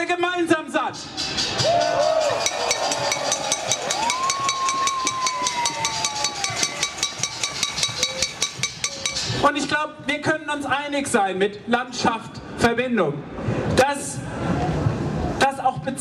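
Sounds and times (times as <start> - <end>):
crowd banging pots and pans: 1.0 - 9.8.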